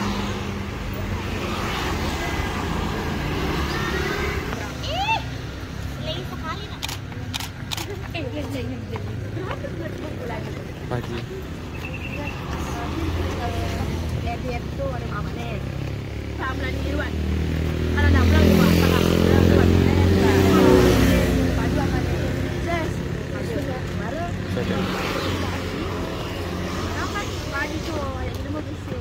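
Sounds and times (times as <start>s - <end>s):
children chattering: 0.0s - 17.3s
vehicle engine passing: 9.7s - 28.9s.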